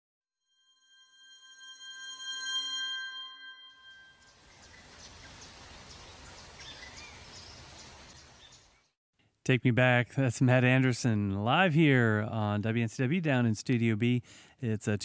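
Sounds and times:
bell-like chord: 0.5 - 4.5
bird chirps: 3.3 - 8.9
outdoor ambience hiss: 4.2 - 8.9.

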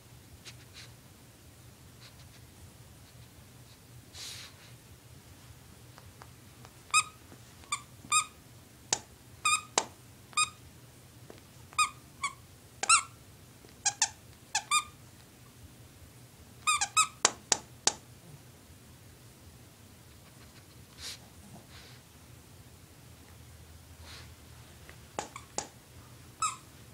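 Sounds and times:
dog toy squeaking: 6.9 - 8.4, 9.4 - 9.8, 10.4 - 10.6, 11.8 - 13.1, 13.8 - 15.0, 16.6 - 17.3, 25.2 - 25.7, 26.4 - 26.7.

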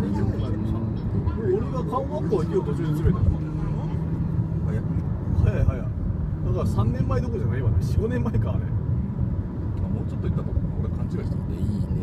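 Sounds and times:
people talking: 0.0 - 4.0
road and engine rumble inside car: 0.0 - 12.0.

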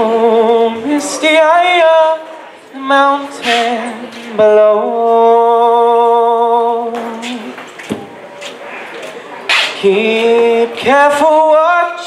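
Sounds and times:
man singing: 0.0 - 7.6, 9.8 - 12.0.

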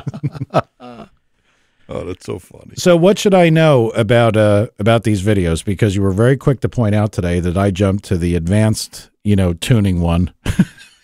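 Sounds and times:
men laughing: 0.0 - 1.2, 10.4 - 11.0.

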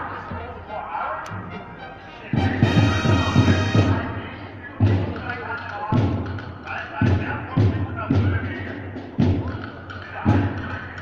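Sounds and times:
street crowd chatter: 0.0 - 11.0.

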